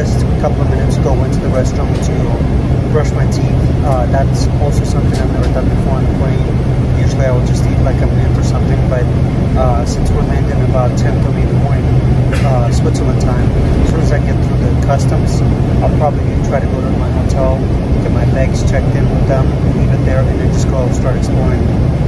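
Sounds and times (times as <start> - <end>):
man talking: 0.0 - 21.7
airliner cabin drone: 0.0 - 22.0.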